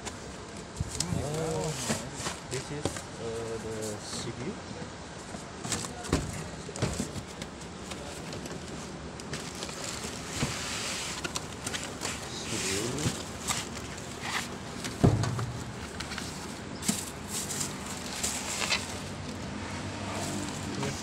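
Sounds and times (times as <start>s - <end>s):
plastic wrap crinkling: 8.0s - 19.4s
foam and cardboard knocking: 14.7s - 18.0s.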